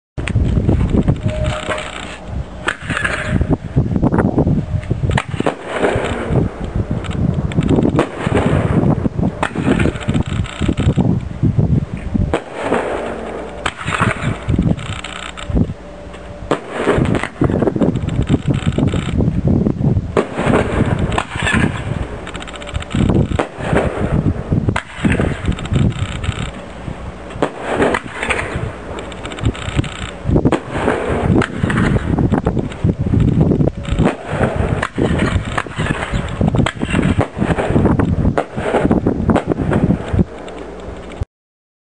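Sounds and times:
firework crackling: 4.5 - 41.0
aerial firework bangs: 7.9 - 10.0, 20.1 - 22.0, 27.4 - 28.7, 30.4 - 32.3, 34.0 - 40.0
firework launch thumps: 34.0 - 40.0.

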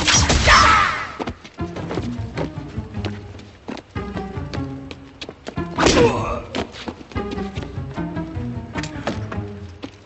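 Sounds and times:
dramatic film score: 0.0 - 10.0.

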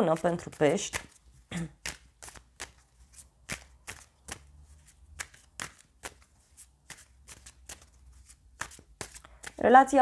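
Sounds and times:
cards being shuffled: 0.1 - 9.8.

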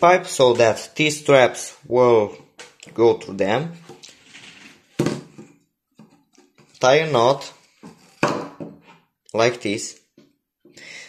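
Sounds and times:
knock on wooden table: 8.2 - 8.9.

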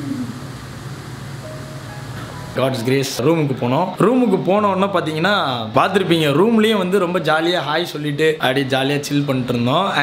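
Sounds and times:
room ambience: 0.0 - 10.0
background music: 1.4 - 3.2.

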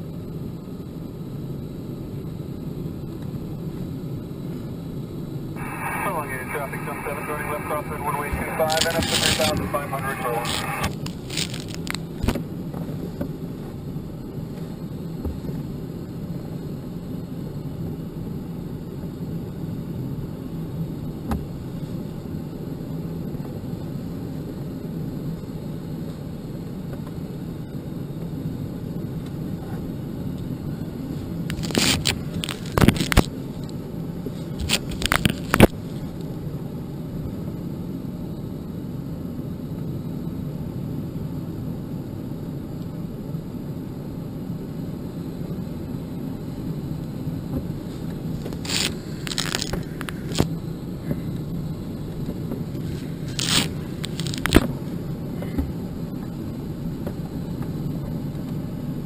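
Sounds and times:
voice over radio: 5.6 - 11.0
radio clicks: 5.6 - 12.4.

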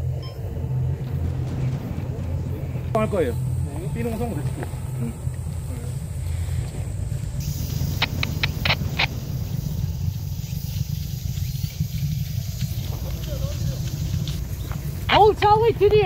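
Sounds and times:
steady low rumble: 0.0 - 16.0
sharp clicks: 7.6 - 9.2.

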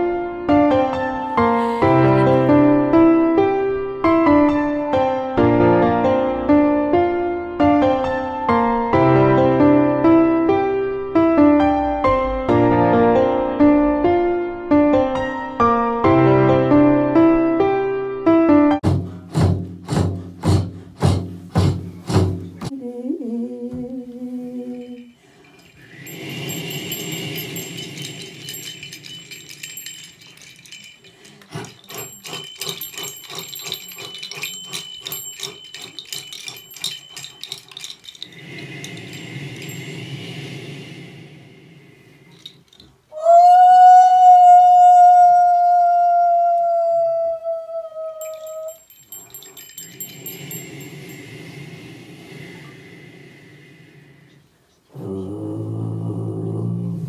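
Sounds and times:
breathy sound: 1.4 - 2.7, 24.3 - 43.2, 48.2 - 57.0
small metal bells jingling: 1.4 - 2.8, 24.6 - 41.0, 42.2 - 43.1, 48.2 - 53.6
woman singing long note: 22.7 - 25.1
faint high chiming: 24.5 - 42.9, 48.2 - 54.4.

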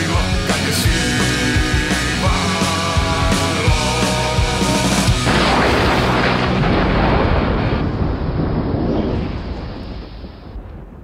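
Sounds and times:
loud crash with deep rumble: 4.6 - 11.0.

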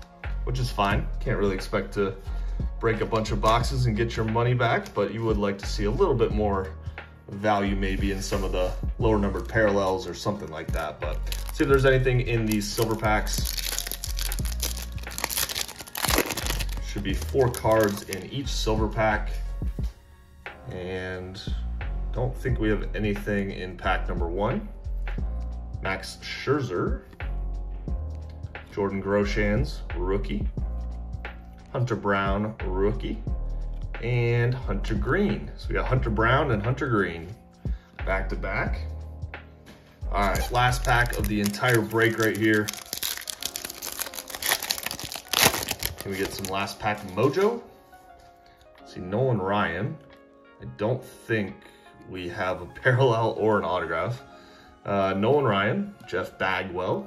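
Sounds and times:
foil wrapper crinkling: 10.5 - 11.8, 12.4 - 18.3, 40.2 - 47.4.

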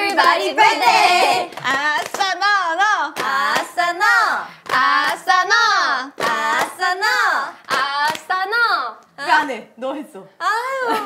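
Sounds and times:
women chanting rhythmically: 0.0 - 9.5
sharp hand claps: 7.7 - 8.4.

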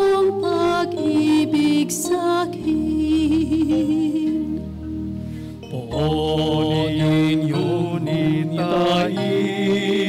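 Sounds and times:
held accompaniment chords: 0.0 - 10.0
person singing chant-like melody: 5.6 - 10.0.

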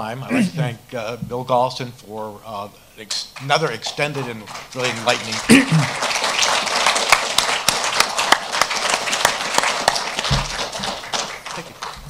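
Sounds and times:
audience applauding: 3.4 - 12.0.

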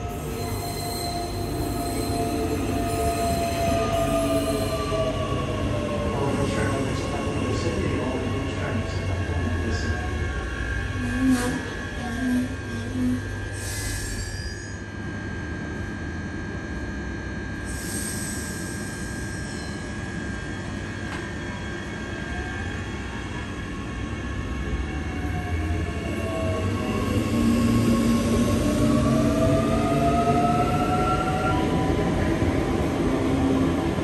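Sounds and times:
electric train motors whining: 0.0 - 5.9
rumble of train wheels: 0.0 - 34.0.

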